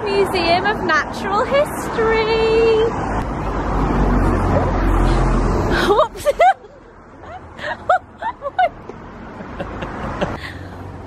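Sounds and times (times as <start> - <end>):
vehicle passing rumble: 0.0 - 11.0.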